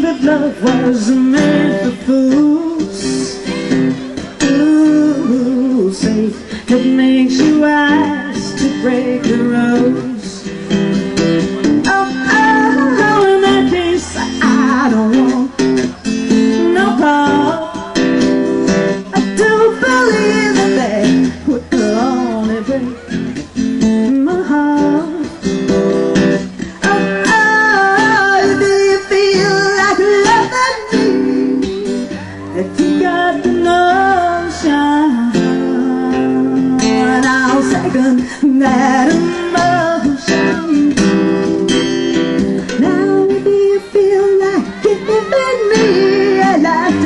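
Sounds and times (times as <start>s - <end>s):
acoustic guitar strumming: 0.0s - 47.0s
person singing: 0.0s - 47.0s.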